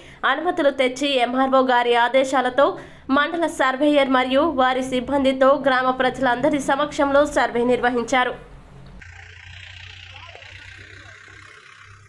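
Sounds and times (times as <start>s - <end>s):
low hum: 8.4s - 12.0s.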